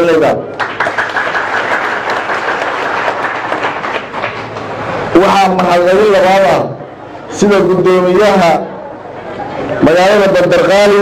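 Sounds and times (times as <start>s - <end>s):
crowd applauding: 0.5s - 4.9s.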